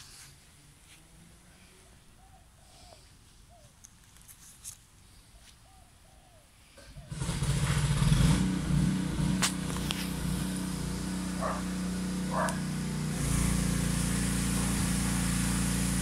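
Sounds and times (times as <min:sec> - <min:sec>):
engine starting and running: 0:06.8 - 0:16.0.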